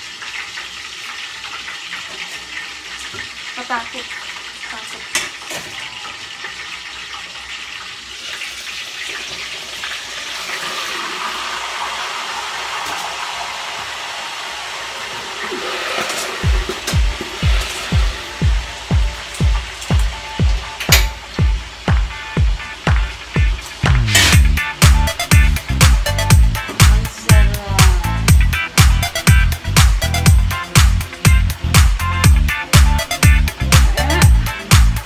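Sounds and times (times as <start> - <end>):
pork sizzling in hot oil: 0.0 - 35.0
dance music with steady beat: 16.4 - 35.0.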